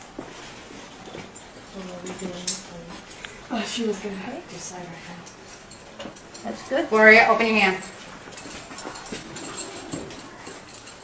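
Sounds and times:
chain and leather restraint clinking: 3.9s - 11.0s.

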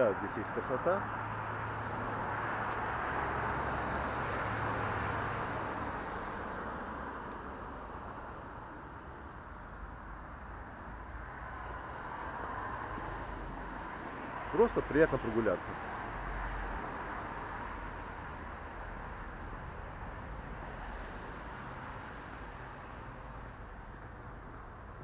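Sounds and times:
rush of passing vehicles: 0.0s - 25.0s.

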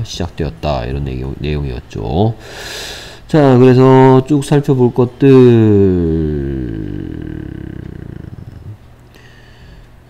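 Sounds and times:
man's hesitation hum with vocal fry: 5.2s - 8.9s.

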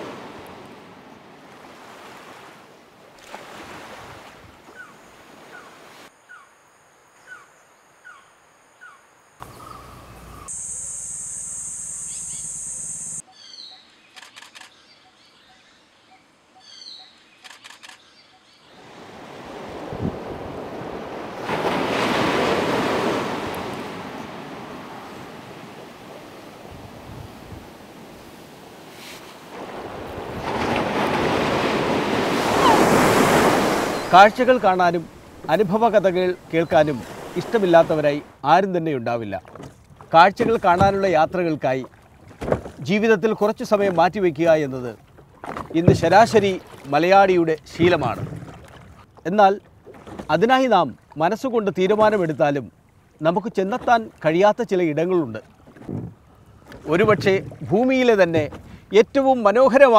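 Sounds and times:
bird chirps: 7.2s - 18.7s, 33.7s - 34.4s
steady high buzz: 9.3s - 13.2s
sea waves breaking on rocks: 18.8s - 38.4s, 45.3s - 49.1s, 56.8s - 59.0s.

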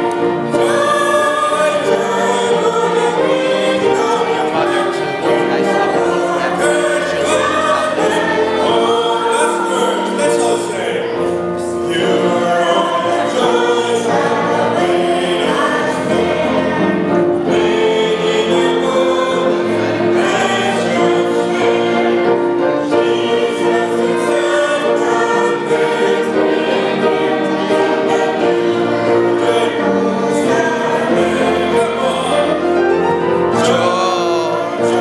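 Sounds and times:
piano: 0.0s - 35.0s
violins playing slow music: 0.0s - 35.0s.

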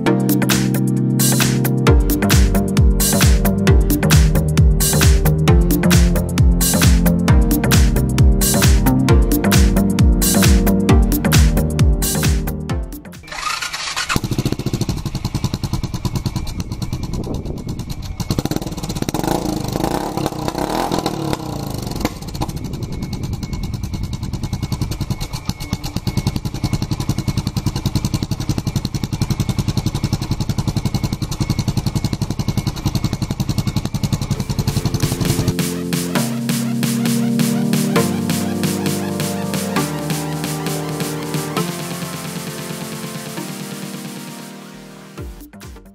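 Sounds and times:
motorcycle engine revving and idling: 0.0s - 44.3s.

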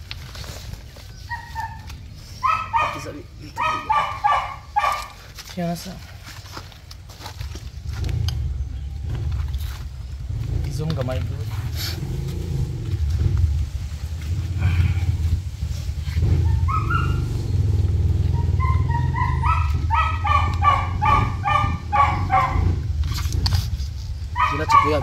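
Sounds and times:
small dog whining: 1.1s - 5.0s, 16.2s - 17.4s, 18.2s - 22.6s
steady low rumble: 6.0s - 24.4s.

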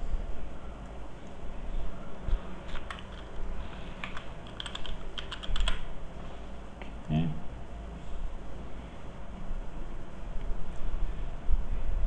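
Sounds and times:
low background hum: 0.0s - 12.0s
keyboard typing: 2.7s - 3.3s, 4.0s - 5.8s.

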